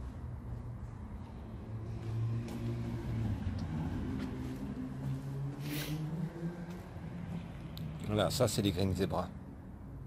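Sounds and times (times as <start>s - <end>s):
low engine hum: 0.0s - 8.8s.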